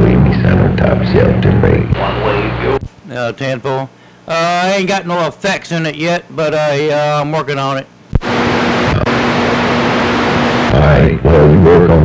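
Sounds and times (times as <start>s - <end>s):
man speaking over radio: 0.0s - 2.9s, 10.7s - 12.0s
radio receiver hiss: 0.0s - 3.0s, 8.1s - 11.5s
faint low hum: 0.0s - 4.8s, 5.8s - 12.0s.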